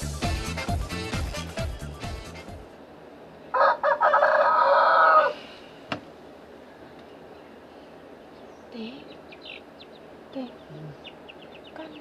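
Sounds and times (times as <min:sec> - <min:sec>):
background music: 0:00.0 - 0:02.7
rooster crowing: 0:03.5 - 0:05.5.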